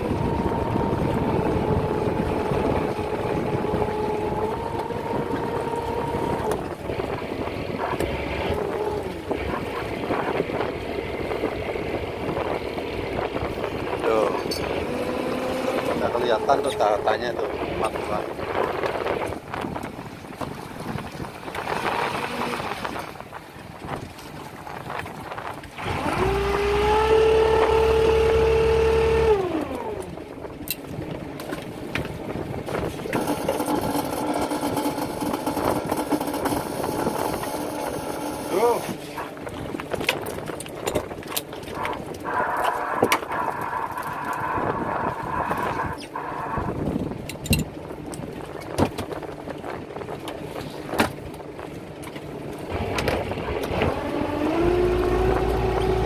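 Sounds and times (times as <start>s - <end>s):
low steady engine: 0.0s - 24.6s, 25.4s - 56.0s
motorized line hauler whining: 25.8s - 30.2s, 33.2s - 39.2s, 41.8s - 46.8s, 52.7s - 56.0s.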